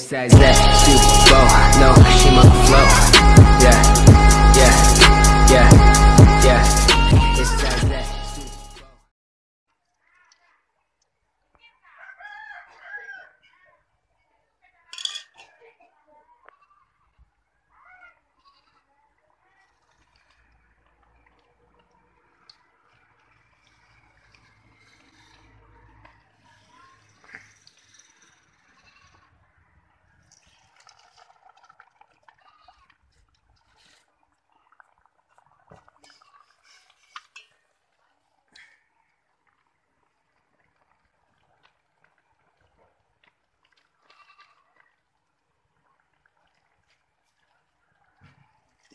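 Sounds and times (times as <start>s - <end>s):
steel kitchenware clinking: 14.9s - 15.5s
farm animal bleating: 16.4s - 16.9s, 17.8s - 18.9s, 28.6s - 29.4s, 32.3s - 33.0s, 36.0s - 36.8s, 44.0s - 45.0s.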